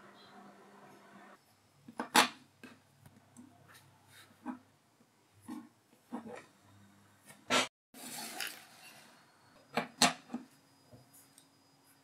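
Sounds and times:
faint high tone: 0.0 - 0.8.

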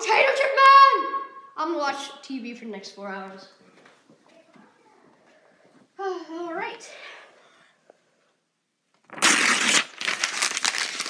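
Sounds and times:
crinkling rustling handling noise: 9.9 - 11.0.

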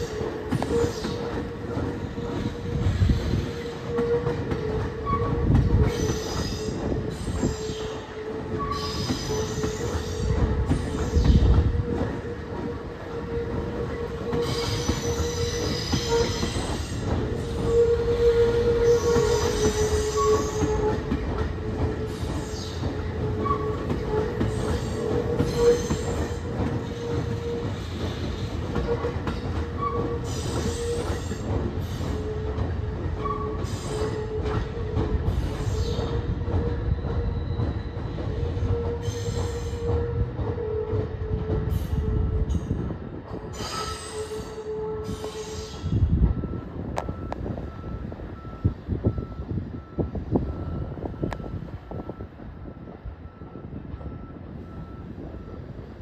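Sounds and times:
electric train moving slowly: 0.0 - 56.0.

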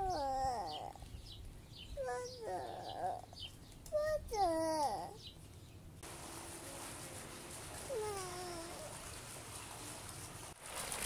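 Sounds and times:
small birds chirping: 0.0 - 5.9.

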